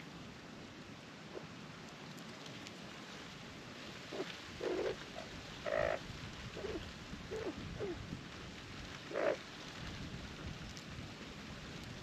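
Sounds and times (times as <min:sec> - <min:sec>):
steady background hiss: 0:00.0 - 0:12.0
magpies calling: 0:09.1 - 0:09.4.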